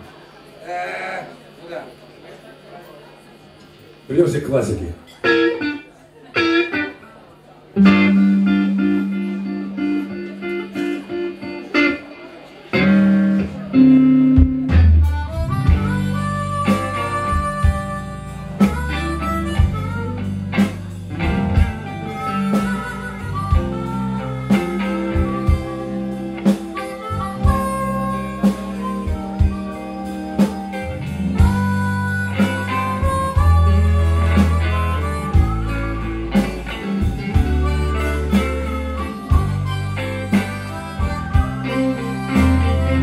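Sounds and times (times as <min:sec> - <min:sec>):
electric guitars bass and drums: 0:07.8 - 0:43.0
harmonica long notes: 0:07.8 - 0:43.0.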